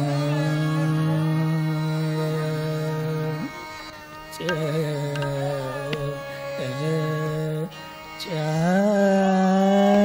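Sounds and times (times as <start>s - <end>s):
instrumental accompaniment: 0.0s - 8.7s
man singing held notes: 4.4s - 7.7s.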